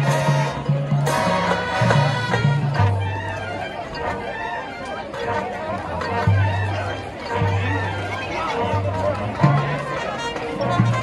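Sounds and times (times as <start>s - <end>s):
marching band playing: 0.0s - 11.0s
spectators chattering: 0.0s - 11.0s.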